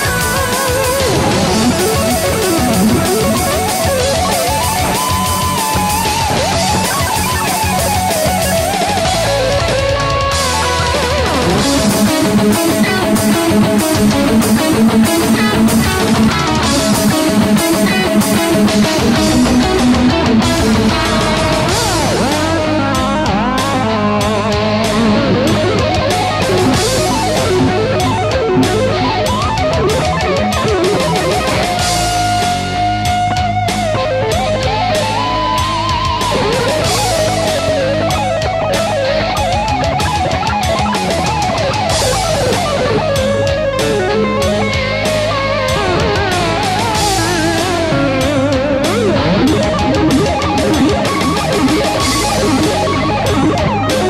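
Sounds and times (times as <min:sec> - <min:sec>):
distorted electric guitar: 0:00.0 - 0:54.0
drums beat: 0:00.0 - 0:54.0.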